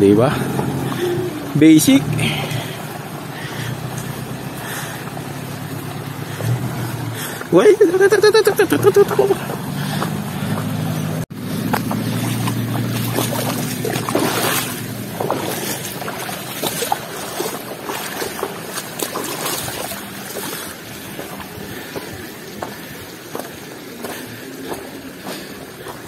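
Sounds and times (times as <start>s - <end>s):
truck engine droning: 0.0s - 26.0s
person laughing loudly: 7.5s - 9.6s.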